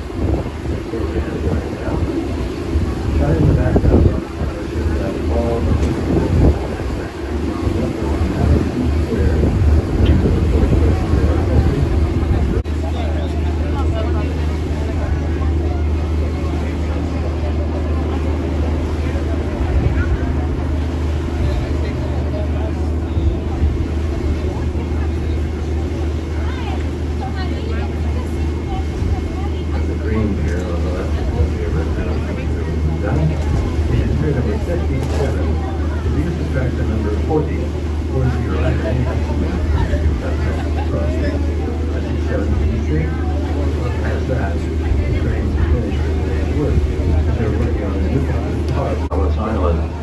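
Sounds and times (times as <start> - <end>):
boat engine drone: 0.0 - 50.0
people talking indistinctly: 0.0 - 50.0.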